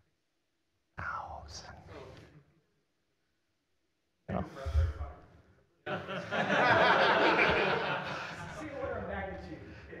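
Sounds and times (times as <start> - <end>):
person whispering: 1.0 - 2.4.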